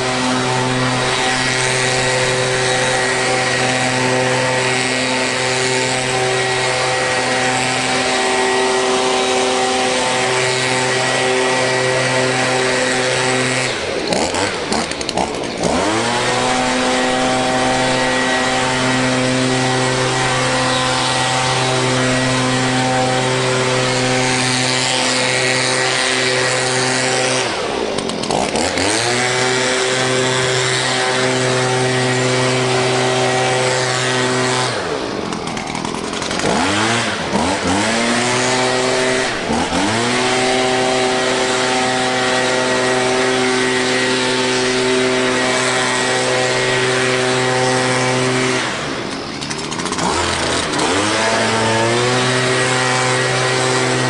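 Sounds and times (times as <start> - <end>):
leaf blower engine revving: 0.0 - 54.0.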